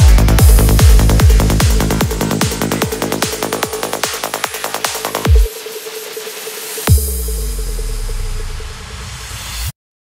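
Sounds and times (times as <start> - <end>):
deep bass note: 0.0 - 3.6.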